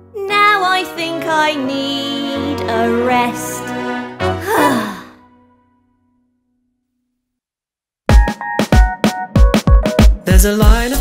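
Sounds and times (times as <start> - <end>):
cartoon voice sighing: 4.4 - 5.2.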